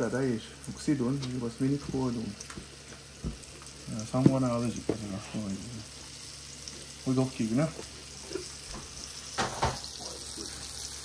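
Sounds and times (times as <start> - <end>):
fish sizzling in oil: 0.0 - 11.0.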